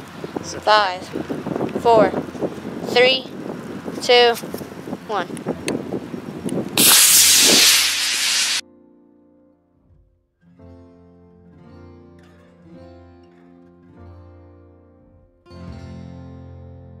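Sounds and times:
model rocket motor hissing: 6.8s - 8.6s.

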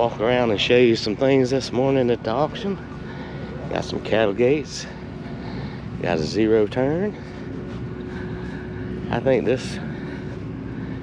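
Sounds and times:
engine droning: 0.0s - 11.0s
faint constant hum: 0.0s - 11.0s.

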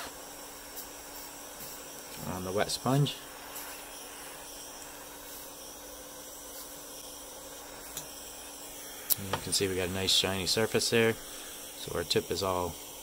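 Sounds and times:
faint steady hum: 0.0s - 13.0s
soldering iron burner hiss: 0.0s - 13.0s.

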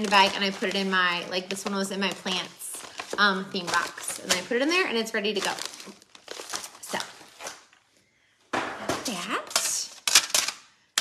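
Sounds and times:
plastic bag crinkling: 0.0s - 7.9s.

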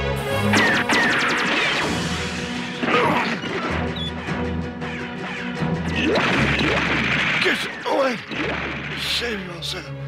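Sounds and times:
dramatic cartoon action music: 0.0s - 10.0s.

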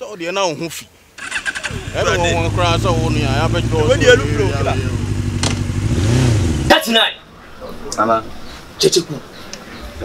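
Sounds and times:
small motorcycle engine idling: 1.2s - 6.6s
man talking: 1.7s - 5.1s.

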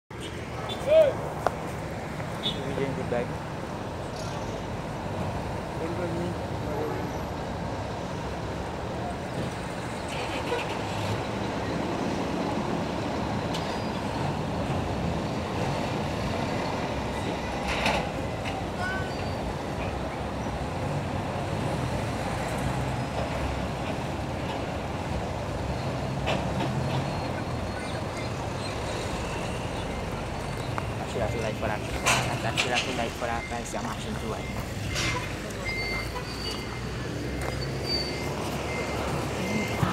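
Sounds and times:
diesel truck engine pulling away: 19.3s - 39.9s
people's voices: 30.0s - 37.6s.

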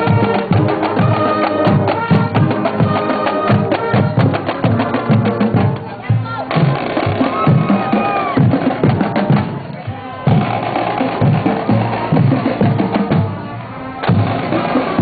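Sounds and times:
snare drums rattling: 0.0s - 13.4s, 14.0s - 15.0s.

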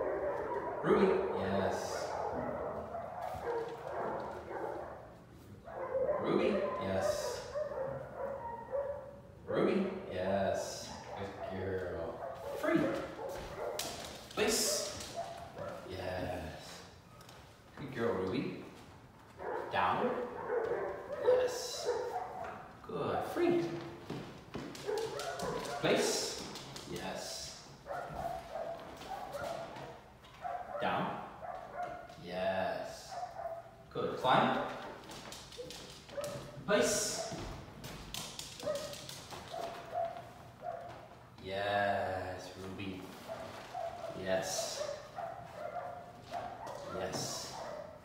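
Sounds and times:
footsteps on vinyl floor: 2.1s - 5.5s, 12.3s - 21.1s, 23.7s - 26.8s, 27.7s - 30.7s, 34.6s - 41.4s, 45.0s - 48.0s.

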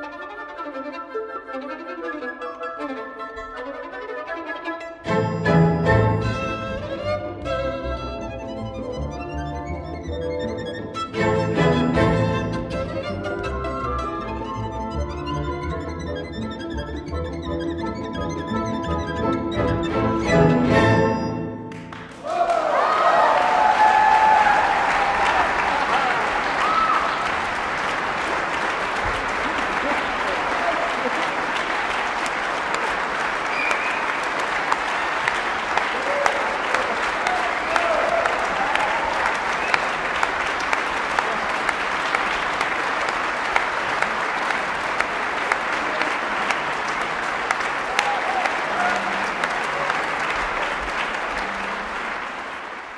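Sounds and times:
audience applauding: 20.7s - 52.9s
slow rhythmic clapping: 21.6s - 22.7s, 27.2s - 52.9s.

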